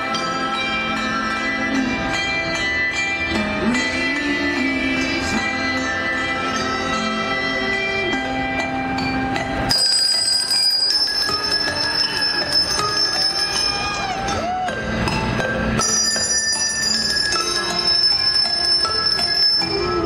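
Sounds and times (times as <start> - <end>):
handbells playing a tune: 0.0 - 20.0.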